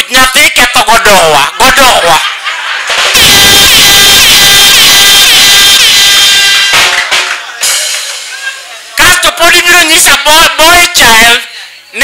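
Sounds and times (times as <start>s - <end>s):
audience clapping and cheering: 2.9s - 8.1s.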